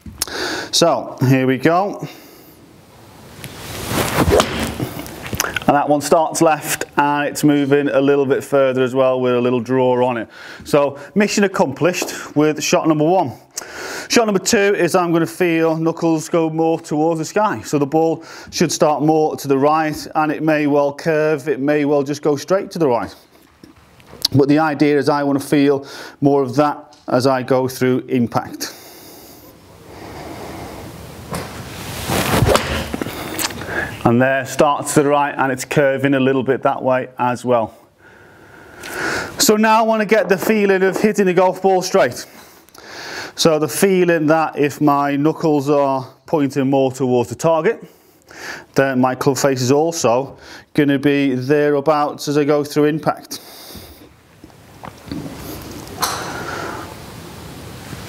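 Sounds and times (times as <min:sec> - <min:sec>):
golf club swish: 0:03.2 - 0:05.4, 0:31.3 - 0:33.5.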